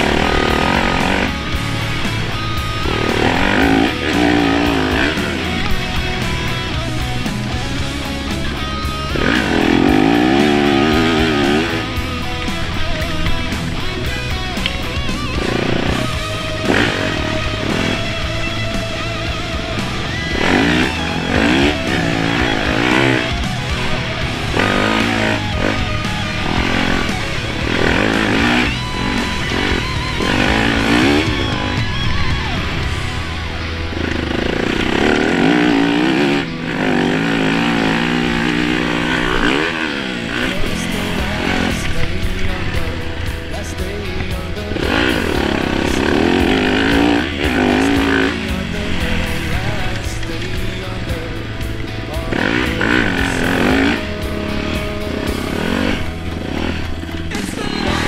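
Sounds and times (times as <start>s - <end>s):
background music: 0.0s - 58.0s
dirt bike engine revving: 0.0s - 58.0s.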